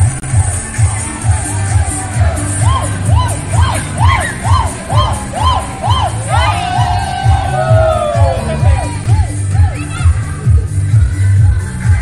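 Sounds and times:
crowd cheering and shouting: 0.0 - 10.6
loud dance music: 0.0 - 12.0.

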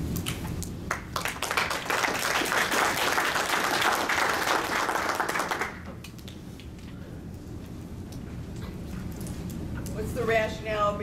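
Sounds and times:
audience applauding: 0.9 - 5.9.

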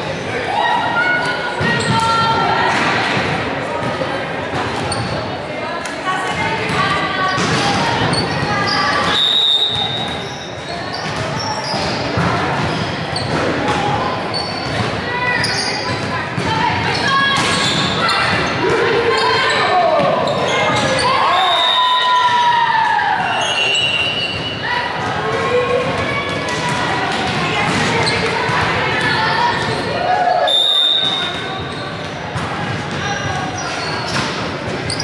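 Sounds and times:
sneakers squeaking on court: 1.2 - 2.1, 4.6 - 5.3, 6.4 - 21.3, 23.3 - 29.9, 31.0 - 35.0.

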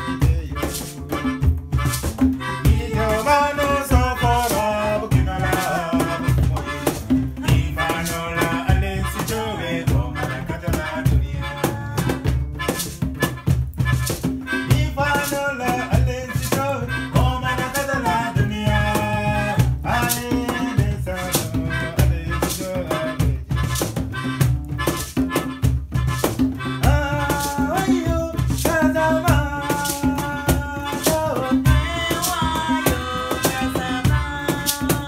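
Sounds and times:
rattling hand percussion: 0.0 - 35.0
strummed acoustic guitar: 0.0 - 35.0.

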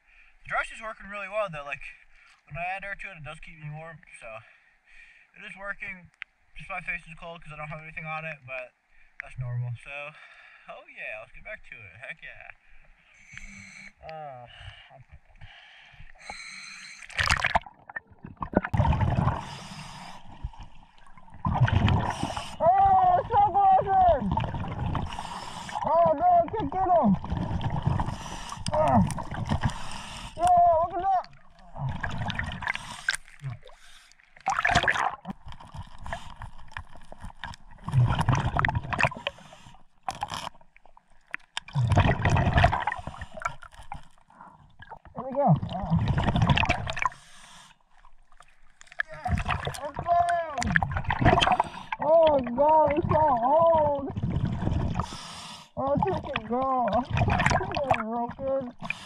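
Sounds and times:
exhaled bubbles rushing: 17.1 - 29.9, 30.8 - 33.8, 34.4 - 39.3, 41.7 - 43.7, 44.8 - 47.1, 49.0 - 55.1, 56.0 - 58.9.

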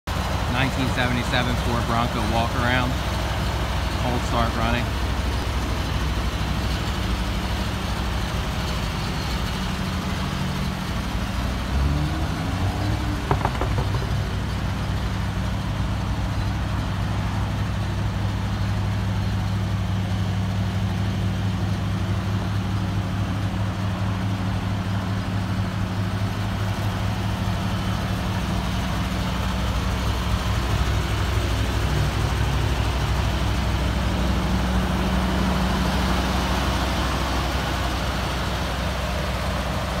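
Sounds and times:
car engine idling: 0.1 - 40.0.

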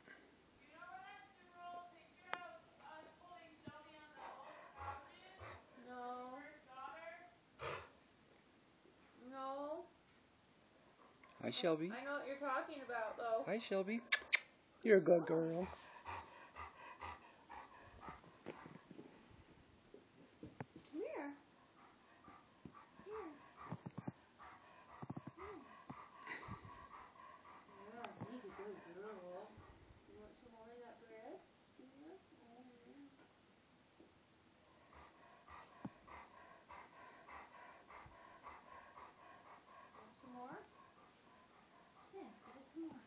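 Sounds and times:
large dog panting: 0.7 - 7.9, 10.8 - 14.1, 15.2 - 19.3, 20.9 - 31.4, 34.6 - 43.0
dog whining: 22.8 - 26.5.

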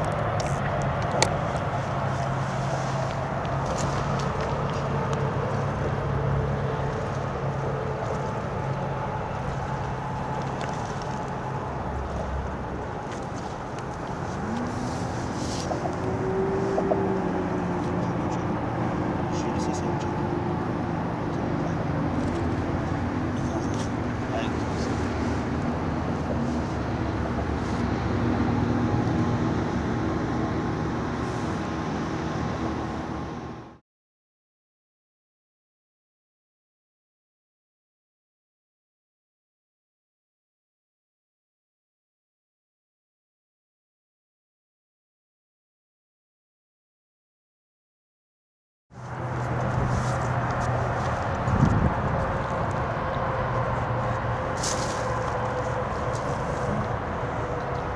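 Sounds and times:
road traffic noise: 0.0 - 33.8, 48.9 - 57.9
vehicle engine rising: 0.0 - 33.8, 49.0 - 57.9.

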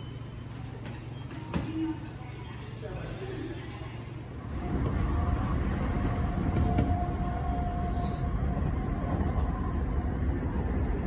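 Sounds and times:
train rumbling: 0.0 - 11.0.

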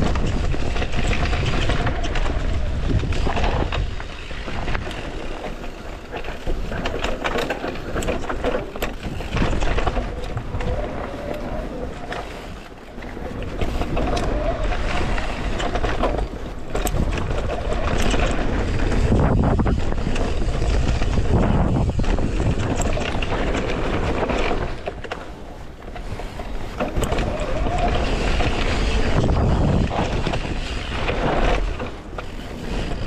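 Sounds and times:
bike frame rattling over rocks: 0.0 - 33.0
wind rumbling on microphone: 0.0 - 33.0.

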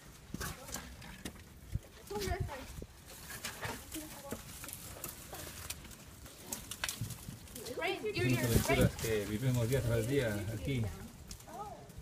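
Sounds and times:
footsteps on loose stones: 0.0 - 12.0.

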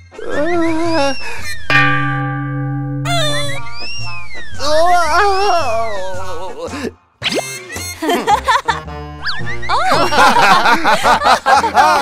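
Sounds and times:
rising and sliding whistle: 0.1 - 1.7
background music: 0.1 - 12.0
ringing metallic clang: 1.4 - 5.5.

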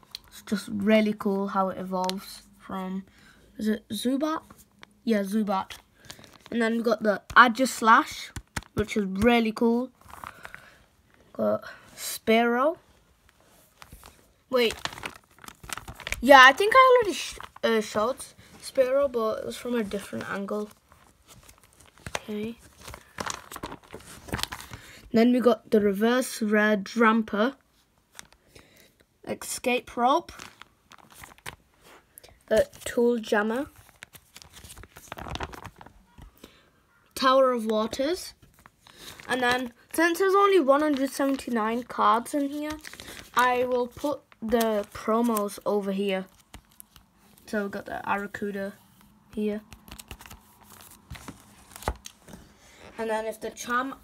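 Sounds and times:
plastic sleeves crinkling: 3.9 - 11.4, 12.9 - 25.0, 28.1 - 28.5, 29.4 - 36.5, 37.6 - 54.0
taps on plastic pages: 8.2 - 9.4.

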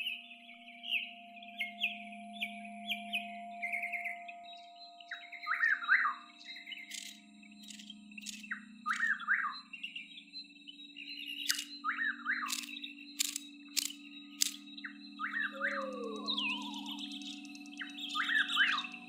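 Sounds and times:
thin steady high tone: 1.1 - 19.0
sharp clicks: 6.9 - 9.1, 11.4 - 11.8, 12.5 - 14.6
lower calls sweeping downward: 15.2 - 19.0.

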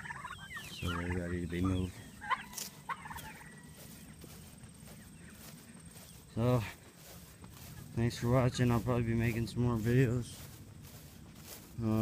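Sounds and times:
young turkeys chirping: 0.0 - 12.0.

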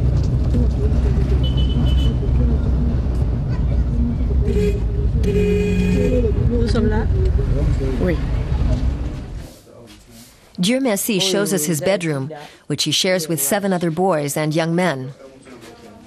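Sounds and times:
engine and road rumble: 0.0 - 10.2
voices talking: 0.5 - 9.0, 9.7 - 15.2
car horn: 1.4 - 2.3, 4.4 - 6.5.

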